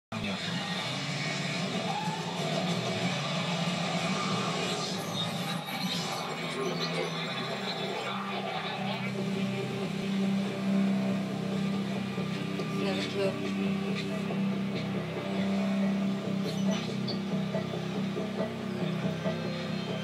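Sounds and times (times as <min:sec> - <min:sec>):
television dialogue: 0:00.1 - 0:20.0
television soundtrack music: 0:00.1 - 0:20.0.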